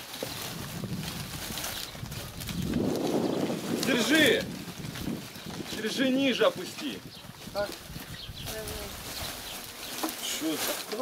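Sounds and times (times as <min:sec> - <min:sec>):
bark strips rustling and clattering: 0:00.0 - 0:11.0
people talking and calling: 0:02.6 - 0:11.0.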